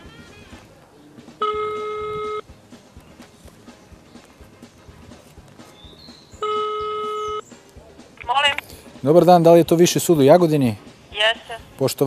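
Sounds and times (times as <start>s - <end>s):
telephone ringback tone: 1.4s - 2.4s, 6.4s - 7.4s.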